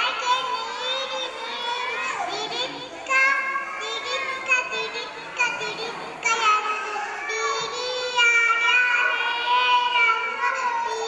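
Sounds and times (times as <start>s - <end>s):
child speaking into a microphone: 0.0s - 11.0s
children's voices: 0.0s - 11.0s.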